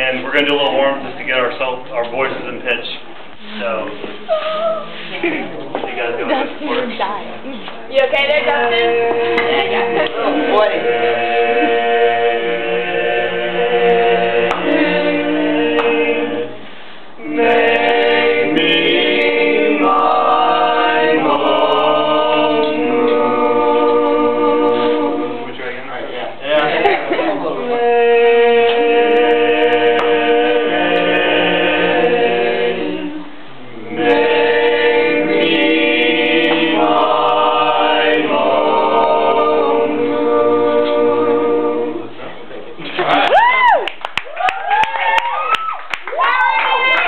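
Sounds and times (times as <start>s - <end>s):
boys singing close harmony: 8.2s - 25.6s, 26.4s - 42.2s.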